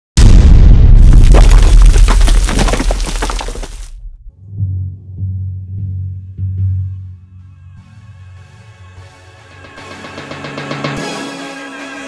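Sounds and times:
crackling debris: 0:00.2 - 0:04.0
deep boom impact: 0:00.2 - 0:05.9.

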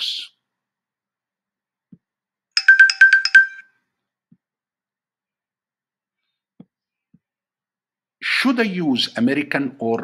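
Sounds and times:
electronic chime jingle: 0:02.6 - 0:03.6.

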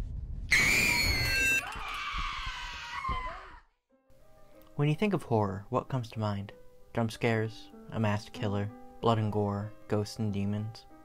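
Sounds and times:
woman screaming: 0:00.5 - 0:03.7.

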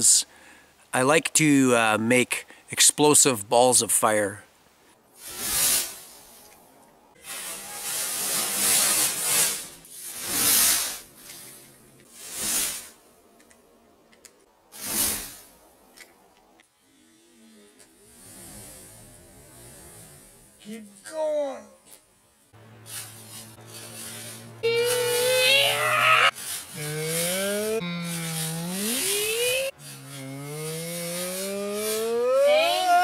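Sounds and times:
fireball whooshing bursts: 0:05.2 - 0:06.4, 0:07.3 - 0:11.1.

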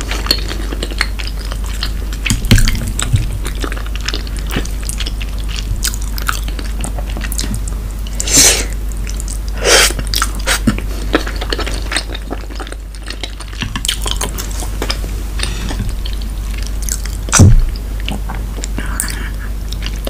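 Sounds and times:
close chewing and mouth clicks: 0:00.0 - 0:08.3, 0:09.0 - 0:20.0.

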